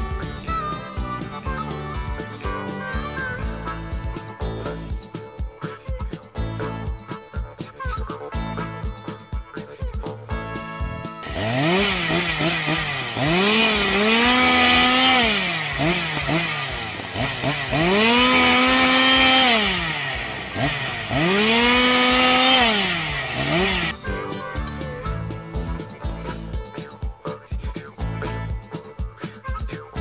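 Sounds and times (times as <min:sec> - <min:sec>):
chainsaw revving: 0:11.2 - 0:24.1.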